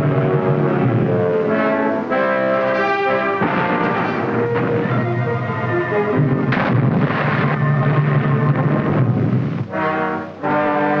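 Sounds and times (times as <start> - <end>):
orchestral music with brass and timpani: 0.0 - 11.0.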